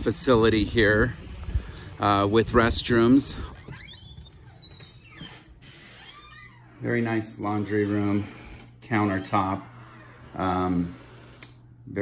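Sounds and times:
metal door squeaking open: 0:02.6 - 0:10.8.

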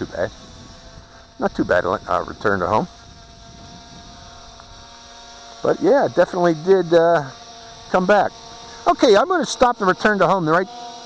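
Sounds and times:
drone motors humming: 0:00.0 - 0:11.0
thin steady whine: 0:00.0 - 0:11.0.

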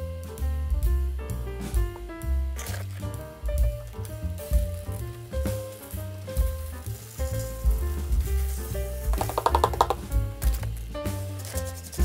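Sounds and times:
background music: 0:00.0 - 0:12.0
sand sliding and pouring: 0:05.0 - 0:09.4, 0:11.4 - 0:12.0.

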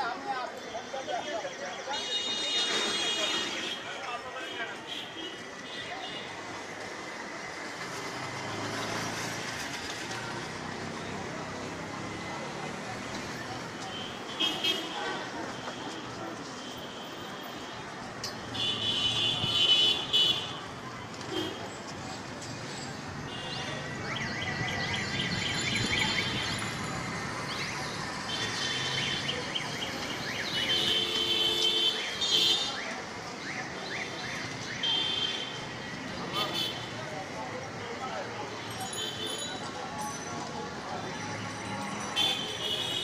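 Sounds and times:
street traffic: 0:00.0 - 0:43.0.

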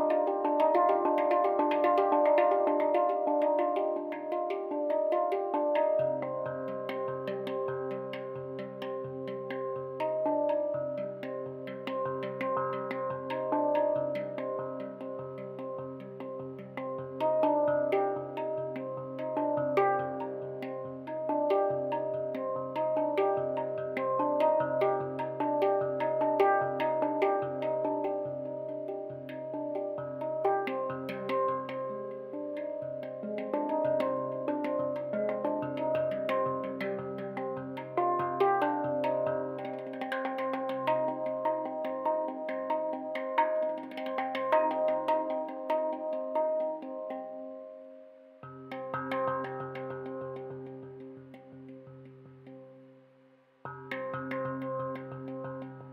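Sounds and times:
handpan played with fingertips: 0:00.0 - 0:52.8, 0:53.7 - 0:55.9.

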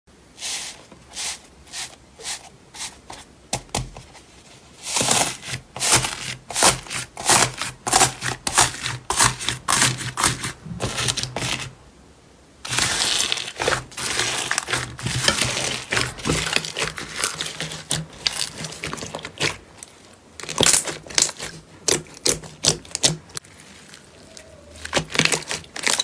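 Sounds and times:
slime beads crackling and popping: 0:20.4 - 0:23.1, 0:24.8 - 0:26.0.

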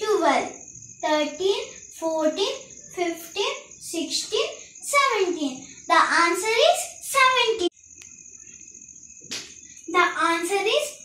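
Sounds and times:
cricket trilling: 0:00.0 - 0:11.0.

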